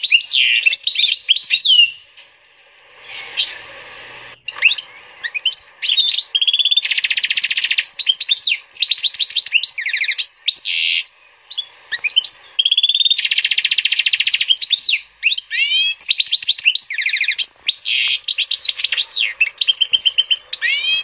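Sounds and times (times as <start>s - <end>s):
songbird singing buzzy trills: 0.0s - 2.1s, 4.4s - 21.0s.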